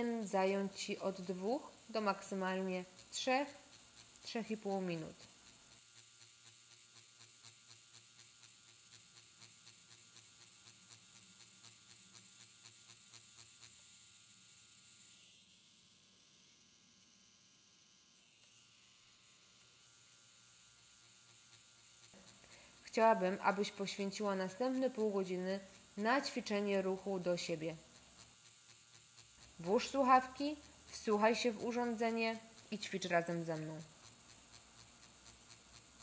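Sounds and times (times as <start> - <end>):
tattoo pen machine buzzing: 0.0 - 36.0.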